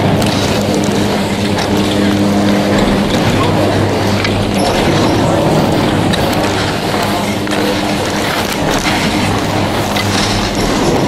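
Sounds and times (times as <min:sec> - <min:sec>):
chairlift machinery drone: 0:00.0 - 0:11.0.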